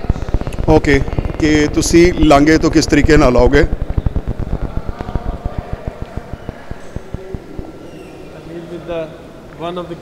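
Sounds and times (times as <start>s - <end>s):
low crackling thumps: 0.0s - 8.3s.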